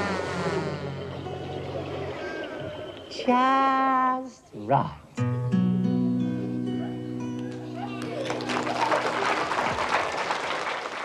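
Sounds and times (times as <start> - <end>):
children applauding: 7.4 - 11.0.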